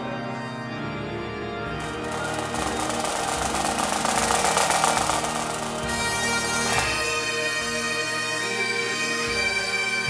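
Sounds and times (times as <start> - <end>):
bagpipes playing: 0.0 - 10.0
drum rattle: 1.8 - 7.3.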